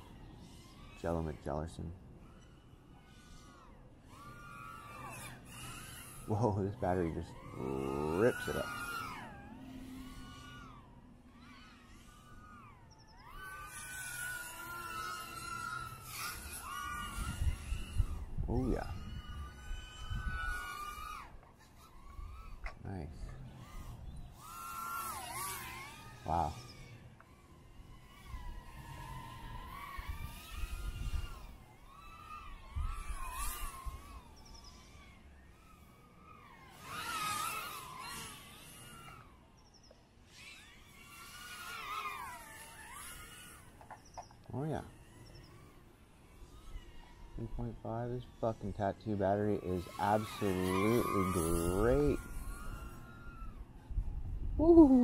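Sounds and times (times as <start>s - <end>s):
drone motors whining: 0.0s - 55.0s.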